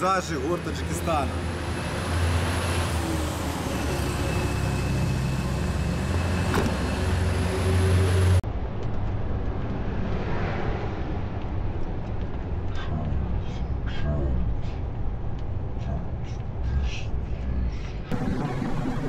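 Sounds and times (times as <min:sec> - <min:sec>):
vehicle driving on road: 0:00.2 - 0:13.8.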